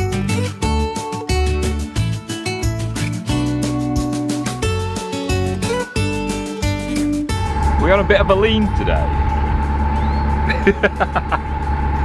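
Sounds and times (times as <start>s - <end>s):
boat engine humming: 5.5s - 12.0s
engine whine: 7.3s - 12.0s.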